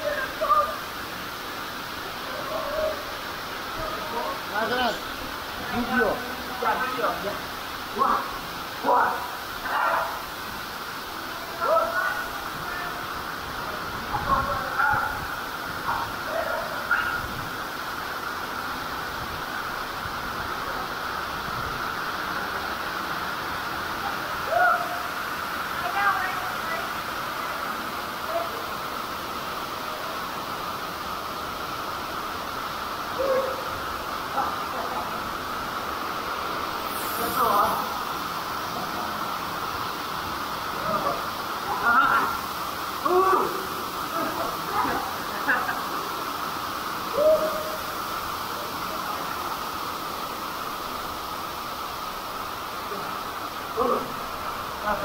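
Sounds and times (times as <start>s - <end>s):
waterfall pouring into pool: 0.0s - 55.0s.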